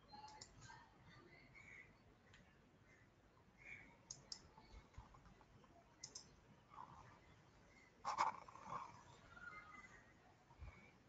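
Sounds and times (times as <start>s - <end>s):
computer mouse double-clicks: 6.0s - 6.3s.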